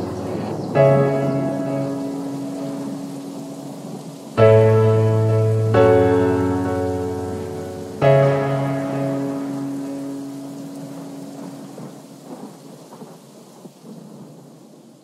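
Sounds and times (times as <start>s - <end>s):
soft crackles: 0.0s - 4.7s, 5.4s - 15.0s
sustained keyboard chord: 0.0s - 12.0s
rain-like noise: 0.0s - 15.0s.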